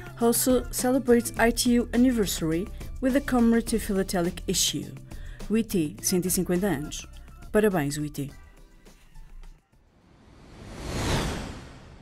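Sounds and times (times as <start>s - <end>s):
whoosh sound effect: 10.1s - 12.0s.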